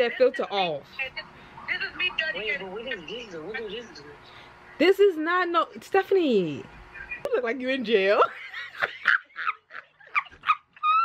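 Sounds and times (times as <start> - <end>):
woman laughing: 8.2 - 11.0.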